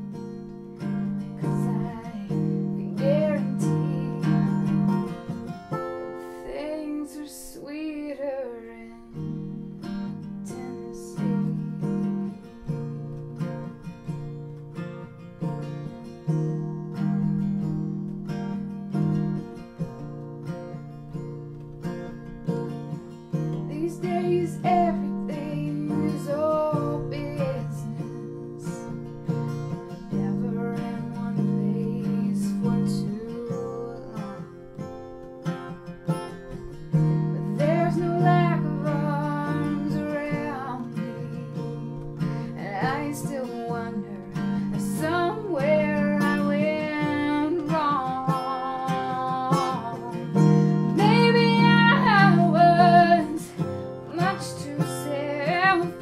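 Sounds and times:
woman singing: 0.0 - 13.7, 22.4 - 56.0
acoustic guitar strumming: 0.0 - 56.0.

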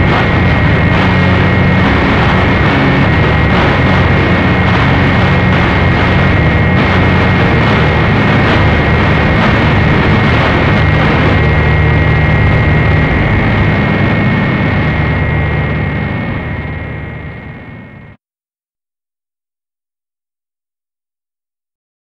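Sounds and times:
harsh distorted noise music: 0.0 - 17.3
low droning rumble: 0.0 - 18.1
high whining tone: 0.0 - 18.2.

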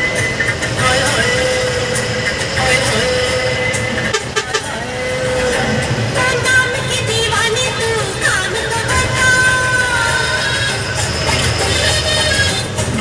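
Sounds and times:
bus engine and road noise: 0.0 - 13.0
song with singing voice: 0.0 - 13.0.

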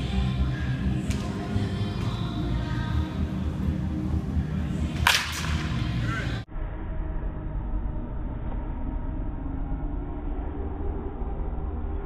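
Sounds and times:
bat cracking ball: 5.0 - 5.8.

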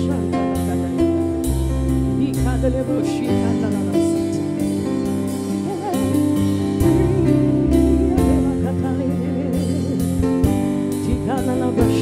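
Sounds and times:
sustained instrumental chords: 0.0 - 11.8
bass line: 0.0 - 12.0
woman singing into microphone: 2.2 - 12.0.

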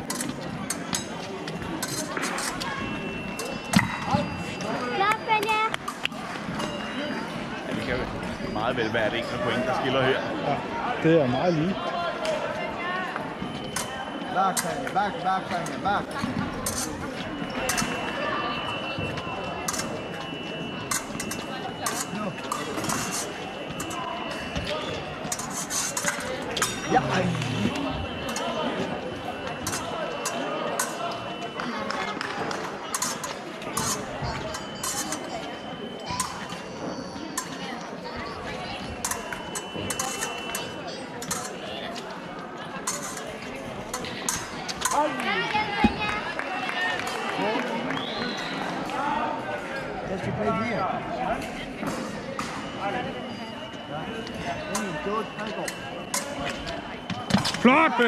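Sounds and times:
voices talking in a hall: 0.0 - 58.0
fencing footwork and blade clicks: 39.0 - 41.6.

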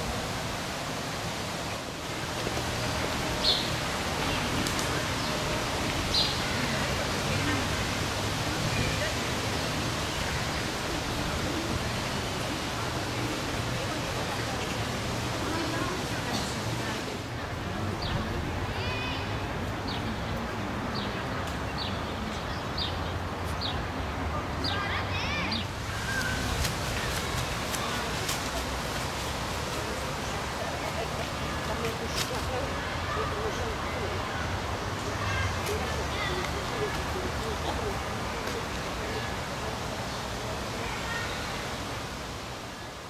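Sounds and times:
faint voices: 0.0 - 43.0
steady rushing noise: 23.3 - 43.0.

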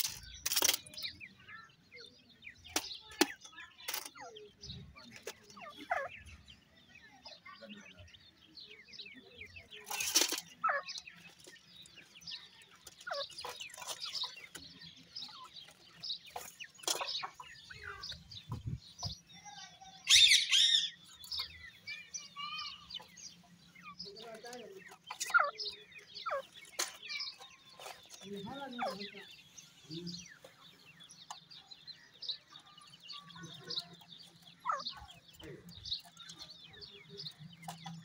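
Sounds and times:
bird chicks peeping and chirping: 0.0 - 38.0.

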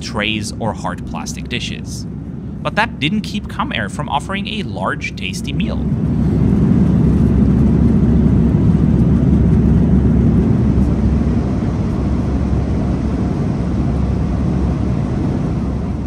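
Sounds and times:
airplane cabin engine rumble: 0.0 - 16.0.

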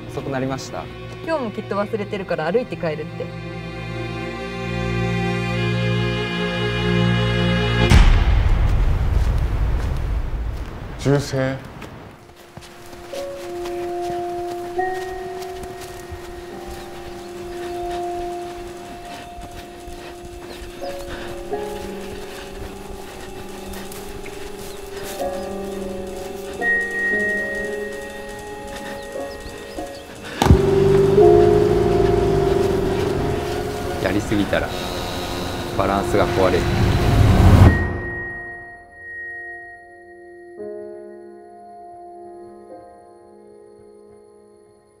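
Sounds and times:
orchestral film score: 0.0 - 9.5, 13.1 - 38.7.

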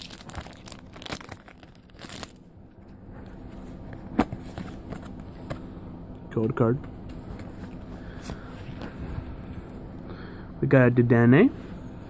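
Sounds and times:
foil pack tearing and crinkling: 0.0 - 2.4
foil rustling: 0.0 - 2.4.

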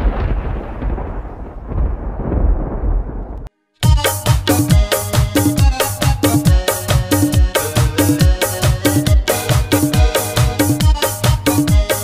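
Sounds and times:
deep rumbling: 0.0 - 3.5.

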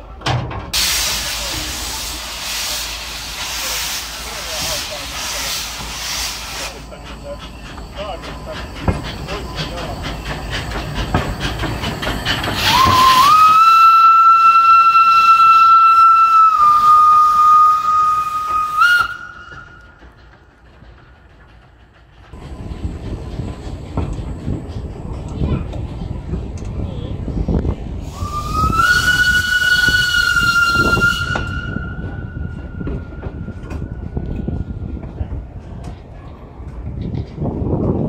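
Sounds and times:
steam locomotive hissing: 0.7 - 37.8
steam whistle blast: 12.6 - 19.8, 28.1 - 32.5.

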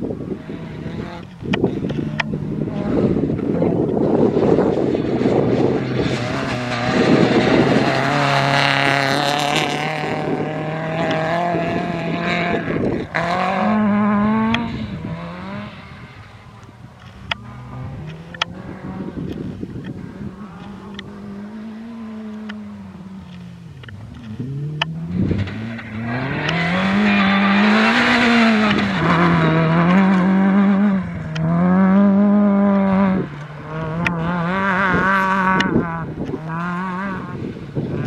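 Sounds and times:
rally car engine at full throttle: 0.0 - 38.0.

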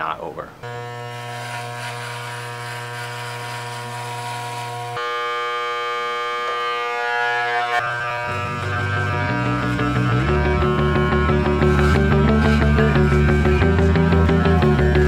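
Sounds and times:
electric hair clippers buzzing: 0.6 - 15.0
music with low bass: 7.8 - 15.0.

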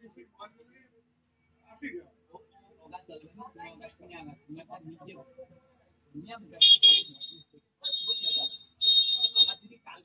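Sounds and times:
shrill high tone: 6.6 - 9.6.

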